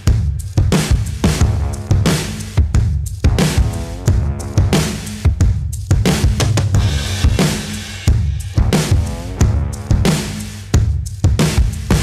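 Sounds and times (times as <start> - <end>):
drum beat and bass music: 0.0 - 12.0.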